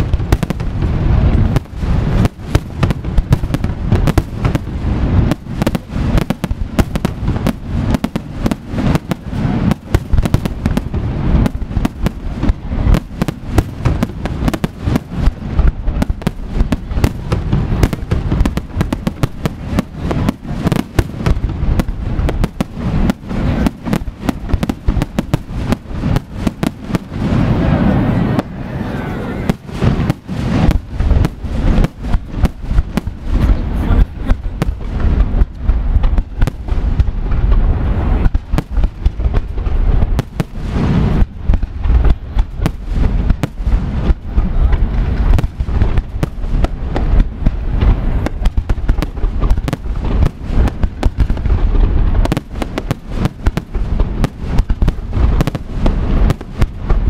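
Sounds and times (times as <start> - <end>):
fireworks bursts and bangs: 0.0 - 57.0
fireworks crackling: 0.0 - 57.0.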